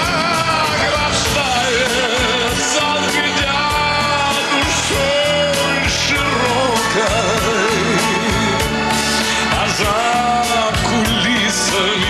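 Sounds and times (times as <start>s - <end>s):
pop band with drums: 0.0s - 12.0s.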